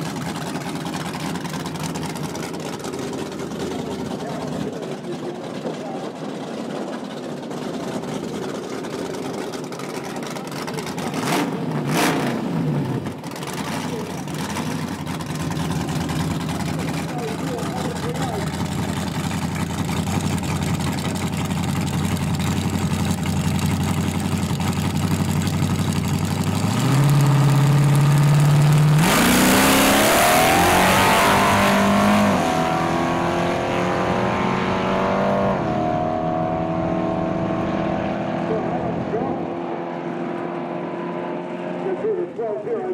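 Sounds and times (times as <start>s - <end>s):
race car engines idling: 0.0s - 34.0s
race cars launching full throttle: 9.6s - 19.6s, 26.4s - 42.3s.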